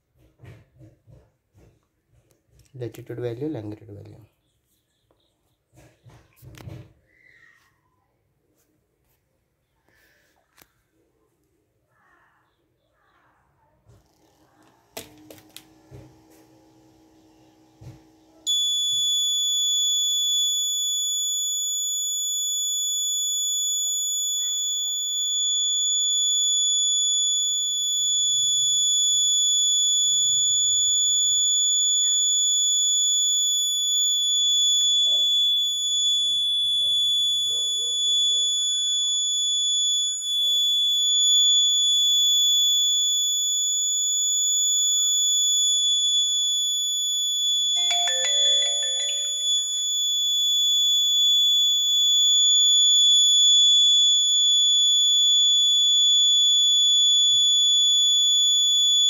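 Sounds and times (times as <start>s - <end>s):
piezo alarm buzzer tone: 17.1s - 59.0s.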